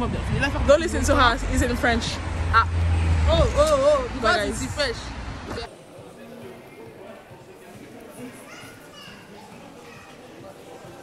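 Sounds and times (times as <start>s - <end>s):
chatter of shoppers' voices: 0.0s - 11.0s
child's voice: 8.3s - 10.2s.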